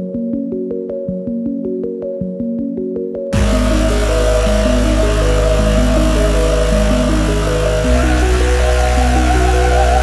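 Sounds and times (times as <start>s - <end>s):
dense noisy synth layer: 3.4s - 10.0s
held synth melody: 3.4s - 10.0s
sustained bass: 3.4s - 10.0s.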